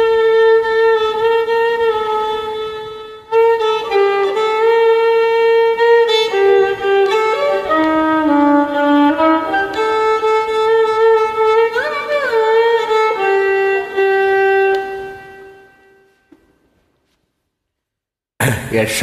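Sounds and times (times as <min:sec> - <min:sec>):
solo violin slow melody: 0:00.0 - 0:16.4.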